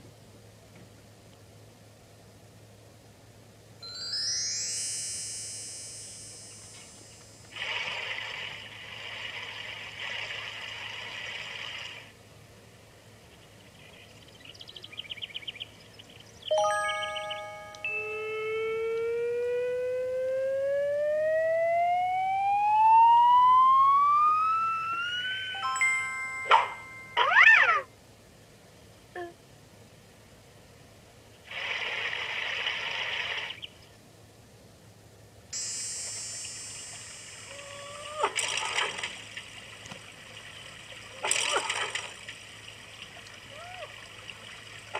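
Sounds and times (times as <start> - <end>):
rising whistle-like glide: 16.5 - 27.2
cartoon tone: 24.4 - 27.9, 37.4 - 38.5
hiss: 31.5 - 33.6, 35.6 - 38.2.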